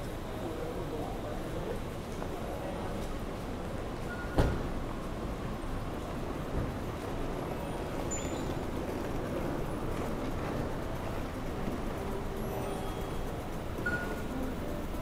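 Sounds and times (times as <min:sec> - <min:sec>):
traffic rumble: 0:00.0 - 0:15.0
faint music: 0:04.8 - 0:15.0.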